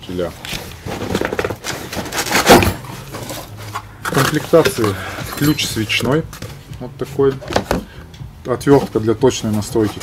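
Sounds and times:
cardboard box rustling and scraping: 0.5s - 5.1s.

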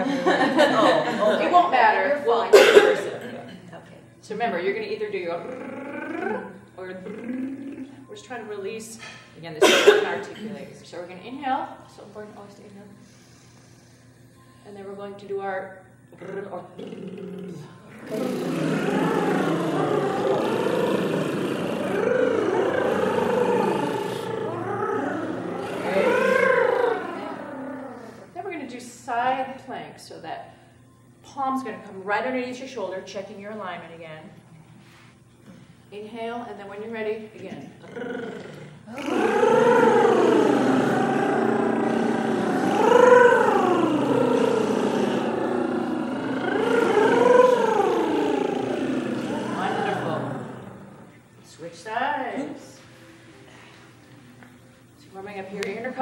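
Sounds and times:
singers doing rolled-tongue trills: 4.9s - 8.4s, 15.8s - 28.4s, 37.6s - 51.4s.

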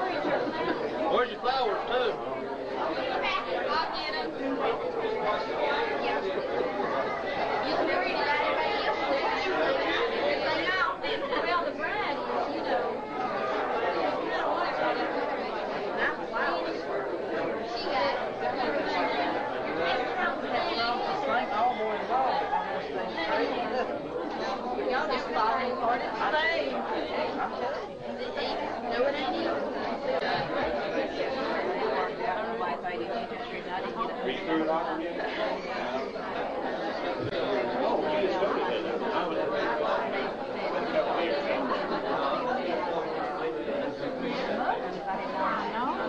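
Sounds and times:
crowd chatter: 0.0s - 46.0s.

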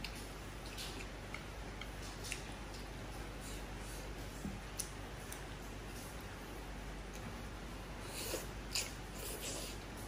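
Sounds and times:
chewing: 0.0s - 6.2s, 8.0s - 10.0s
slurping noodles: 8.0s - 9.9s.

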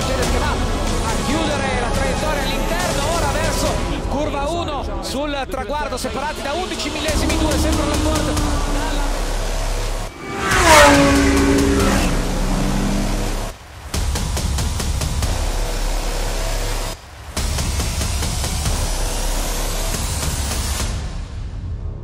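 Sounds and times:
race car engines: 0.0s - 20.6s
race car passing close: 6.1s - 13.9s.

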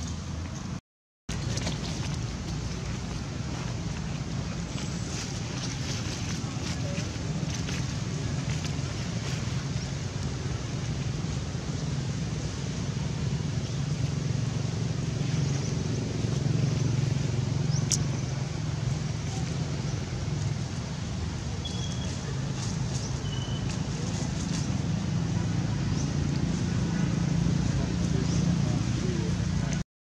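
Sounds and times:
low outdoor rumble: 0.0s - 29.8s.

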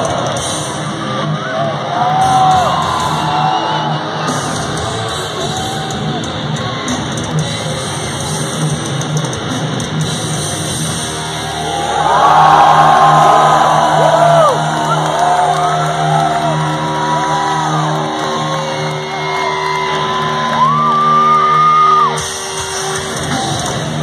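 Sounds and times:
crowd shouting and whooping: 0.0s - 7.4s, 11.2s - 24.0s.

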